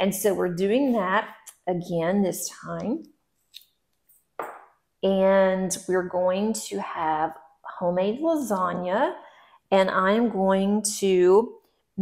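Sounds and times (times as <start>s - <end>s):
woman talking: 0.0s - 3.2s, 5.0s - 11.6s
woman breathing: 9.2s - 9.7s.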